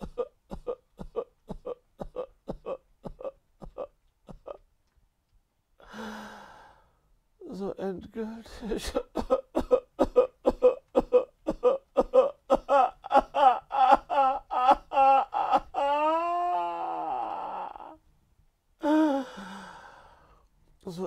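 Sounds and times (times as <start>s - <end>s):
man sobbing: 0.0s - 4.6s, 8.5s - 18.0s
man wailing: 10.6s - 18.0s.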